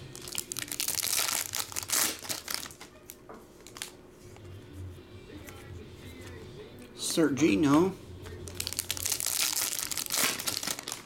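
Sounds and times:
foil wrapper crinkling: 0.0 - 4.0, 8.4 - 11.0.

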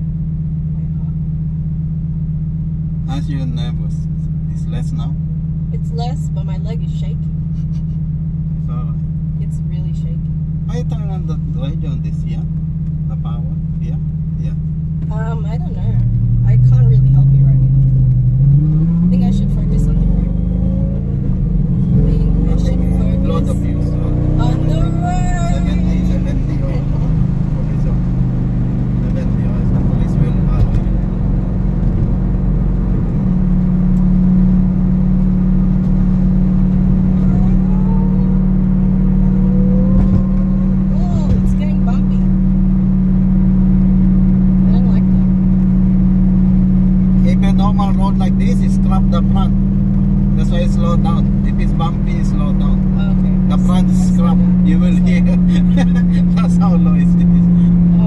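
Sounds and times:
car engine from inside cabin: 0.0 - 58.0.

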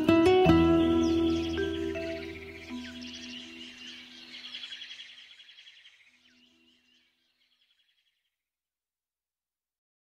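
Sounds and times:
soft background music: 0.0 - 4.8
rapid chirping trills: 0.5 - 8.2.

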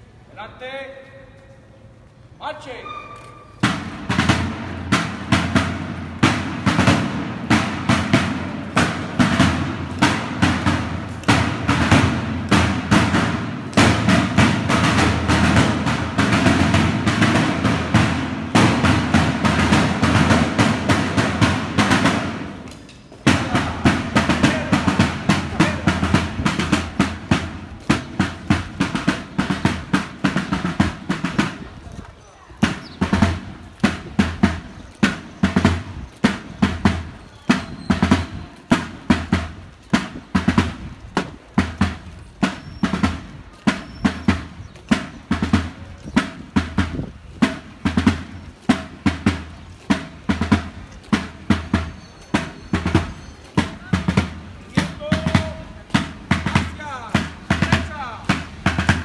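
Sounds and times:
field drum beating a march: 2.8 - 59.0.

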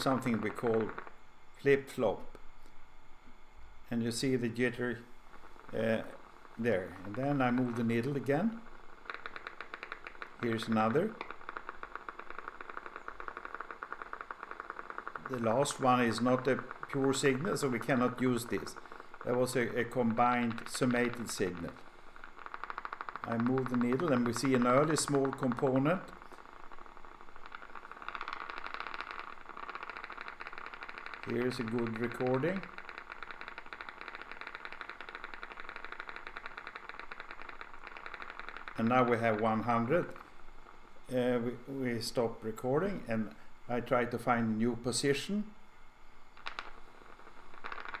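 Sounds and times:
regular train of sharp clicks: 5.3 - 41.0, 46.3 - 48.0.

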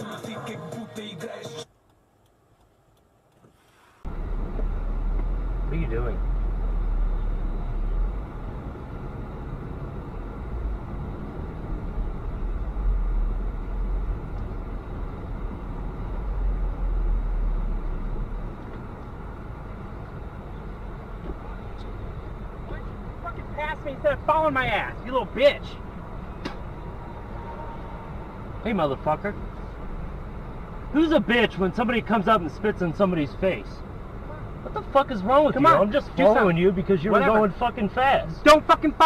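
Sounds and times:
road and engine noise inside car: 1.6 - 39.0.

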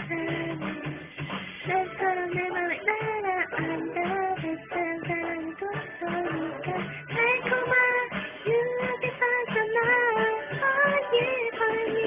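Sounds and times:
woman singing: 0.0 - 1.0, 1.6 - 12.0
guitar-like backing track: 0.0 - 12.0.

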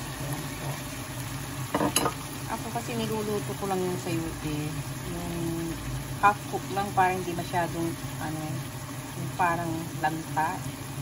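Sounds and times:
steady sizzle: 0.0 - 11.0.

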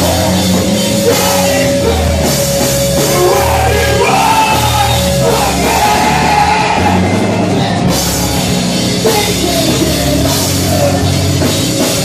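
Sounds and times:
drum kit: 0.0 - 12.0
pop-punk band playing live: 0.0 - 12.0.

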